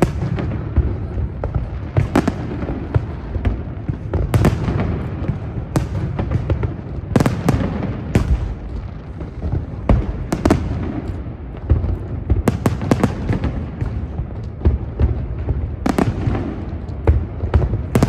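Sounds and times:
firework bangs: 0:00.0 - 0:18.0.

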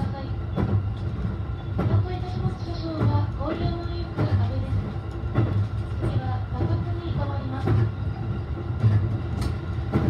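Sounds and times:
train rumble: 0:00.0 - 0:10.0.

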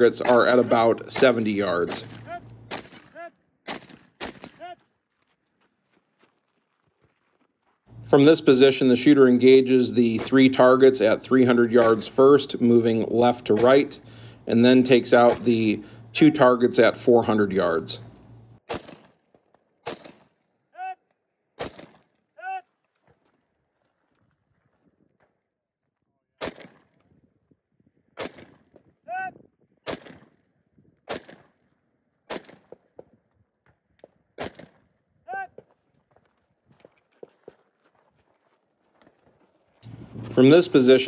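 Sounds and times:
rifle shots: 0:00.2 - 0:04.7, 0:18.6 - 0:20.4, 0:21.6 - 0:22.1, 0:26.4 - 0:26.9, 0:28.2 - 0:28.7, 0:29.9 - 0:30.3, 0:31.1 - 0:31.6, 0:32.3 - 0:32.8, 0:34.4 - 0:34.8.

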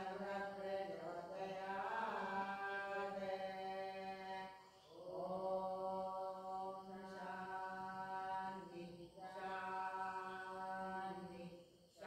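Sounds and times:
person chanting: 0:00.0 - 0:12.0.

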